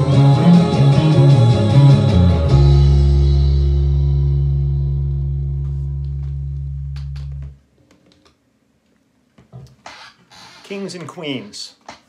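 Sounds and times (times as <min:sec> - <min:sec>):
electric bass guitar low note: 0:00.0 - 0:07.6.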